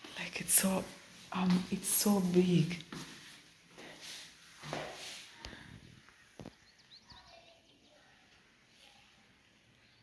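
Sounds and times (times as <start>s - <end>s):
faint high chirps: 5.4s - 10.0s.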